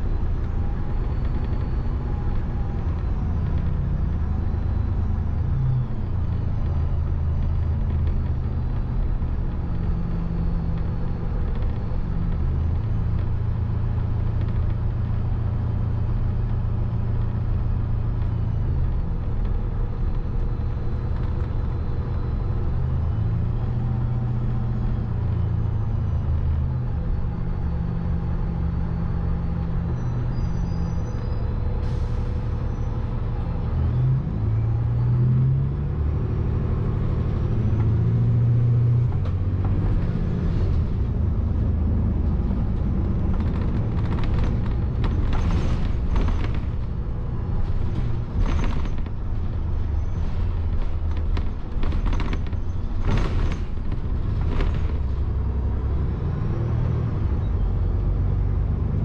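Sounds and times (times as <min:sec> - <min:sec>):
bus engine droning: 0:00.0 - 0:59.0.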